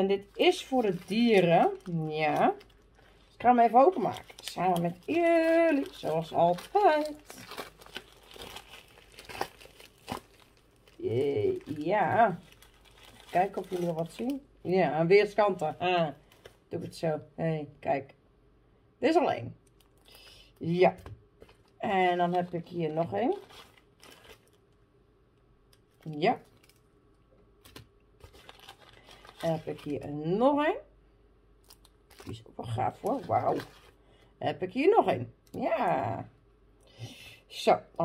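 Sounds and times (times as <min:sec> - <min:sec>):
envelope and paper rustling: 0:00.0 - 0:14.4, 0:21.4 - 0:24.6, 0:27.6 - 0:30.2, 0:32.1 - 0:34.0
sharp paper crackle: 0:00.0 - 0:14.5, 0:23.2 - 0:24.6, 0:27.6 - 0:30.1.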